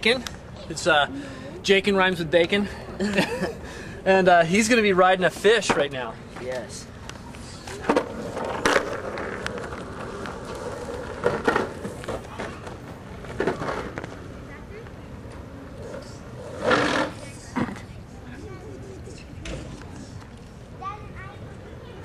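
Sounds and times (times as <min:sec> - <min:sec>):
skateboard wheels rolling on pavement: 0:01.7 - 0:18.4.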